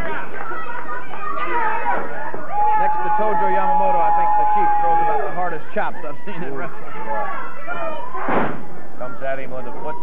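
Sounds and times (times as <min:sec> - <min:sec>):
voices: 0:00.0 - 0:10.0
body slamming on wrestling ring: 0:08.2 - 0:08.6.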